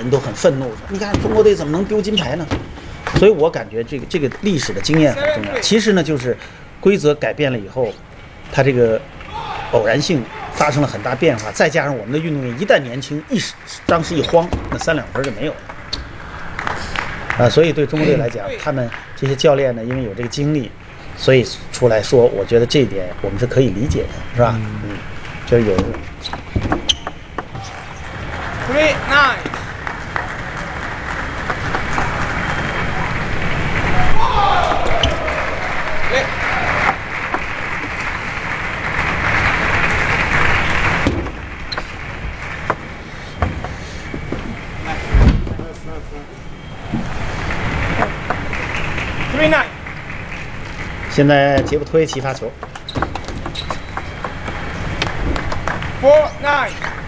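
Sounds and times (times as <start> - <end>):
arena background noise: 0.0 - 57.0
table tennis ball hits and bounces: 0.9 - 3.3, 25.7 - 28.0, 40.8 - 43.7, 51.5 - 56.0.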